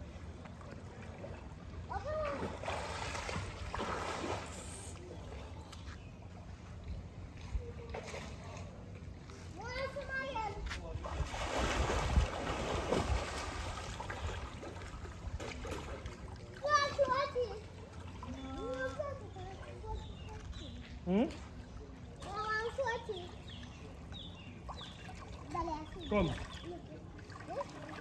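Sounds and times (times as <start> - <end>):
water splashing from swimming: 0.0 - 5.6, 10.9 - 28.0.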